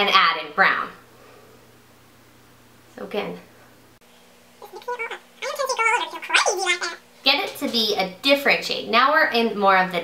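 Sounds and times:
woman speaking: 4.6s - 8.0s.

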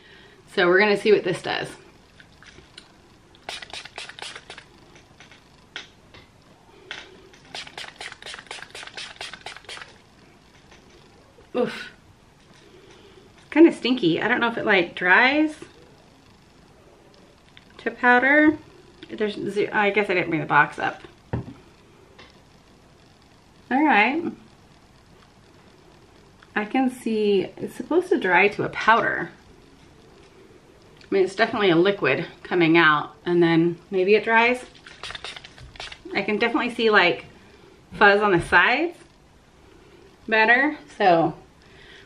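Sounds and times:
spray bottle spritzing: 3.4s - 4.7s, 7.4s - 10.0s, 34.8s - 36.1s.

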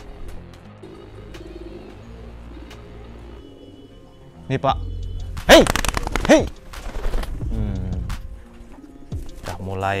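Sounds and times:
pigeons cooing: 0.1s - 4.3s.

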